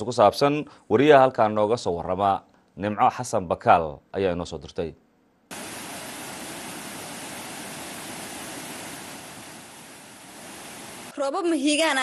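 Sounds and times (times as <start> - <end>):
floodwater rushing over stones: 5.5 - 11.1.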